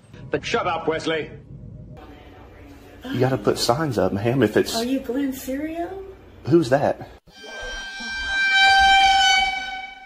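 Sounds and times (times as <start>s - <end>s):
horn blast: 7.3s - 10.0s.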